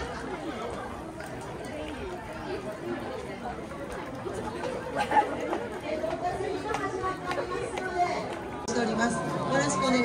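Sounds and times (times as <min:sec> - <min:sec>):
chatter of many people: 0:00.0 - 0:10.0.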